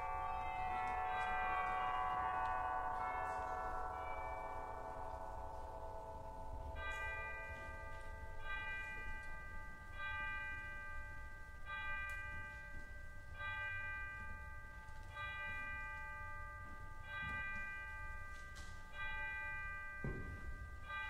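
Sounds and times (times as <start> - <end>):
bell chiming the hour: 0.0 - 21.0.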